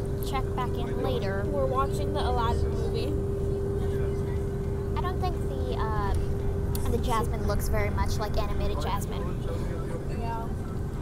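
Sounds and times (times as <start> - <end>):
bus engine and road noise: 0.0 - 11.0
steady hum on one note: 0.0 - 11.0.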